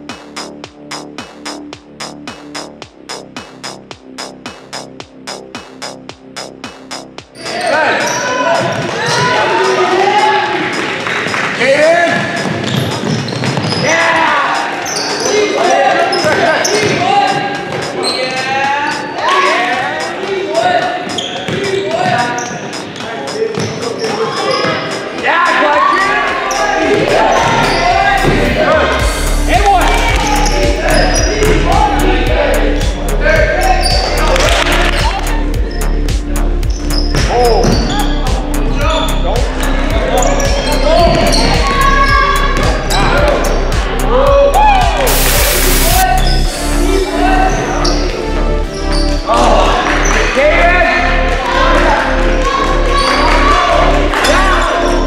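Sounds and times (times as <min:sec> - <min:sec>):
electronic music with fast beat: 0:00.0 - 0:48.9
sneakers squeaking on hardwood: 0:12.2 - 0:14.0, 0:16.1 - 0:19.2, 0:20.8 - 0:25.1
basketball bouncing: 0:21.5 - 0:23.0.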